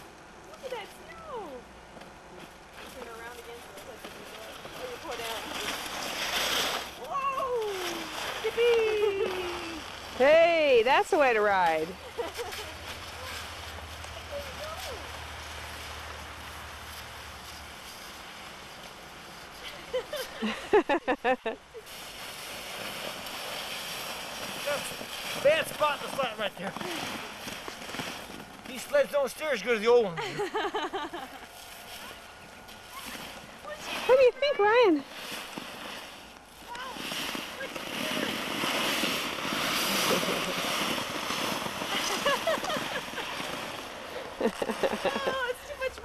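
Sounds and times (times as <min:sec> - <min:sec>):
plastic sled sliding on snow: 0:02.4 - 0:46.0
person laughing: 0:19.6 - 0:21.8, 0:30.2 - 0:31.4, 0:39.8 - 0:40.7, 0:41.9 - 0:43.4, 0:44.4 - 0:45.7.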